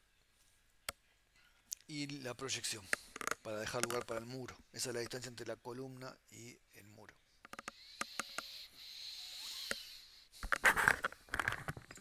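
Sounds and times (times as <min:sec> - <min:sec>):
computer mouse click: 0:07.5 - 0:08.5.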